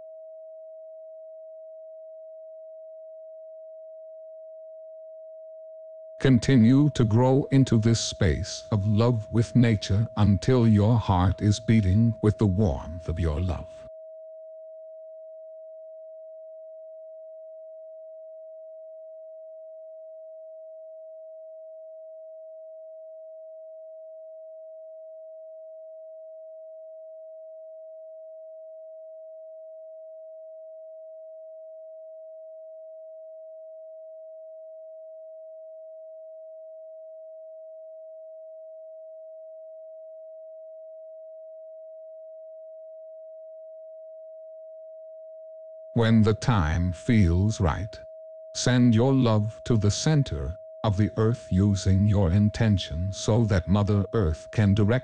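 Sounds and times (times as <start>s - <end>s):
pure sine tone: 0.0s - 55.0s.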